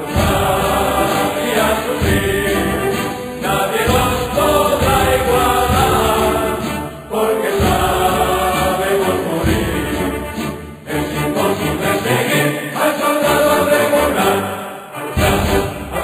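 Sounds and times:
choir singing held notes: 0:00.0 - 0:16.0.

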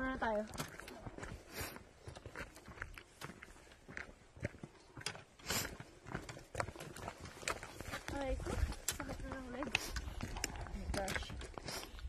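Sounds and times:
footsteps on gravel and stairs: 0:00.0 - 0:12.0.

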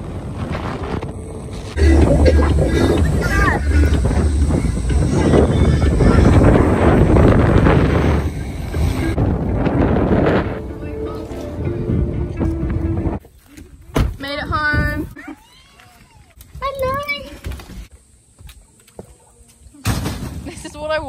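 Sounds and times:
wind buffeting microphone: 0:00.0 - 0:13.2, 0:13.8 - 0:15.2
faint steady tones: 0:00.1 - 0:09.2.

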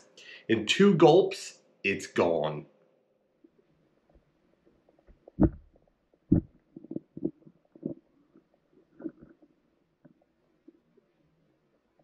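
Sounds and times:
underwater thumps and knocks: 0:05.1 - 0:08.0.

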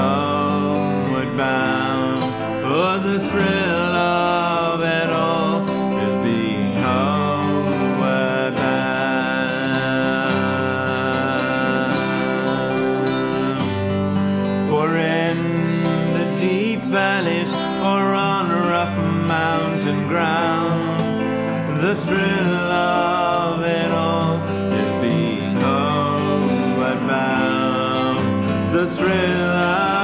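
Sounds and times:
acoustic guitar strumming: 0:00.0 - 0:30.0
digital piano accompaniment: 0:00.0 - 0:30.0.

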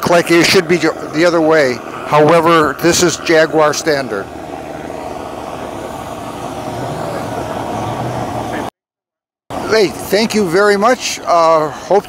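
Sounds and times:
outdoor background noise: 0:00.0 - 0:08.7, 0:09.5 - 0:12.0
vehicle engine humming: 0:00.0 - 0:08.7, 0:09.5 - 0:12.0.

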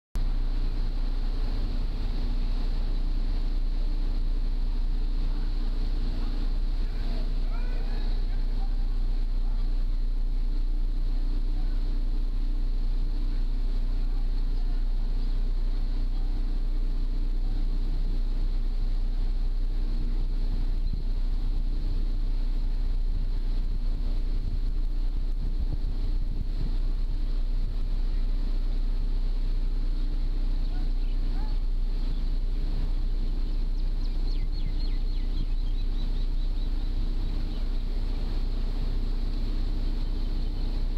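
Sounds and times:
ferry engine droning: 0:00.2 - 0:40.9
steady hum: 0:00.2 - 0:40.9
wind buffeting microphone: 0:18.7 - 0:40.9.

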